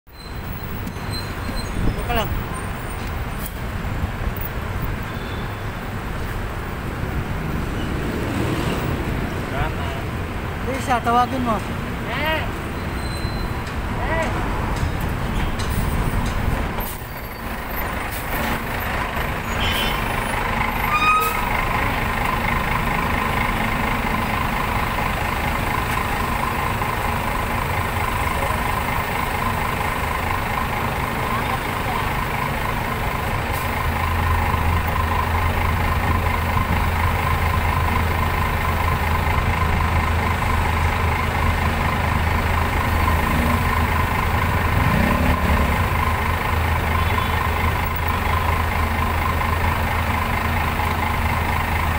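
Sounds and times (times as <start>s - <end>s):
bus engine idling: 0.1s - 51.9s
road traffic: 0.1s - 51.9s.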